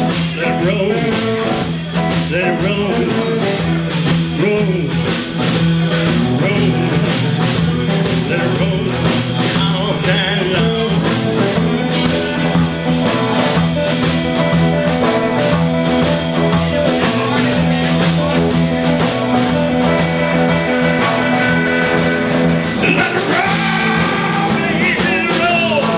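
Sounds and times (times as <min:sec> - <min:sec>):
lead electric guitar bending lines: 0:00.0 - 0:25.9
live blues-rock band playing: 0:00.0 - 0:25.9
singer holding a note: 0:21.4 - 0:25.9.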